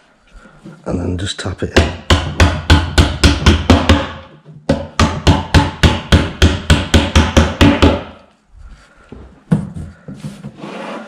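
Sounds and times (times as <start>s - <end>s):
boards rubbing and knocking: 9.5s - 11.0s.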